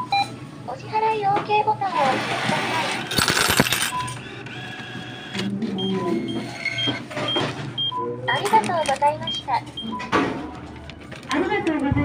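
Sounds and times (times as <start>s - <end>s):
machine beeping: 1.9s - 10.2s
coins clattering into tray: 3.0s - 4.2s.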